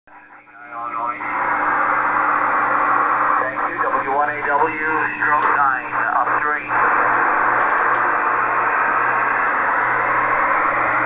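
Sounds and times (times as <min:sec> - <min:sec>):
radio static hiss: 0:00.1 - 0:10.6
steady low hum: 0:00.1 - 0:11.0
voice over radio: 0:00.2 - 0:01.6, 0:03.3 - 0:07.5.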